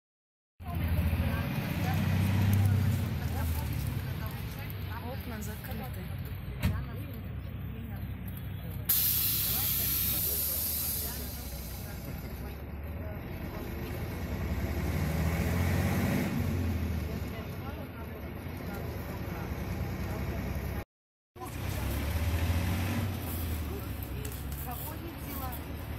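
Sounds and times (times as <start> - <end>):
bus engine running: 0.6 - 20.8, 21.4 - 25.9
compressed air hiss: 8.9 - 12.1.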